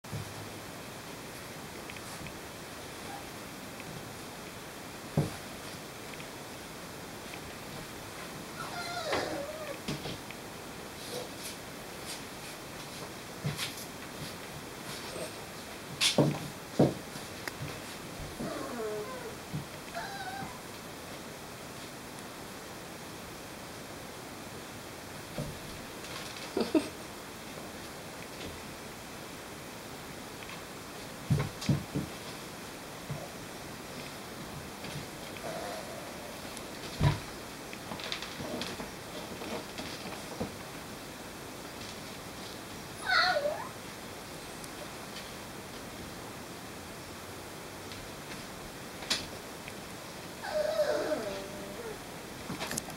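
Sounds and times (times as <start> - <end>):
puppy whining: 3.0 - 3.3, 8.6 - 9.8, 18.3 - 20.7, 35.4 - 36.5, 43.0 - 43.8, 50.4 - 52.0.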